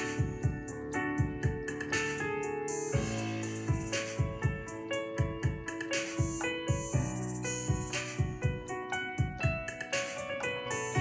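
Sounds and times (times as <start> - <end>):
drum beat with hi-hat: 0.0 - 11.0
electric keyboard chords: 0.0 - 11.0.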